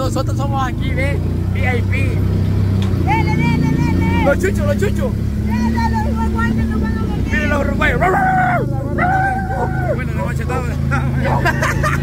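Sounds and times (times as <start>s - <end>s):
motorcycle engine running: 0.0s - 12.0s
dog howling: 8.0s - 10.1s.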